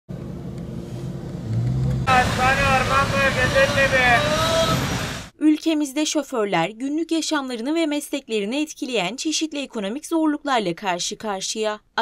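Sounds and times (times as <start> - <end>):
vehicles driving past: 0.1 - 5.3
street ambience: 0.1 - 5.4
people's voices: 2.1 - 5.0.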